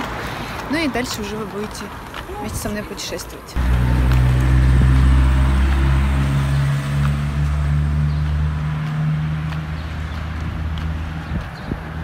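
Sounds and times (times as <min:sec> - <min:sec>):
vehicle engine humming: 0:03.6 - 0:12.0.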